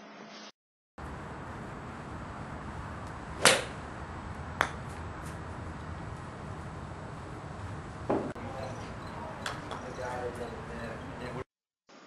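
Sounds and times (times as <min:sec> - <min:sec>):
steady background noise: 0:01.0 - 0:11.5
golf club striking ball: 0:03.0 - 0:06.1, 0:08.0 - 0:08.4, 0:09.4 - 0:10.0.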